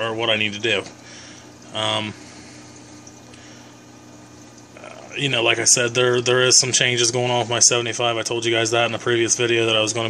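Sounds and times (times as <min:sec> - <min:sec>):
low pump hum: 0:00.0 - 0:10.0.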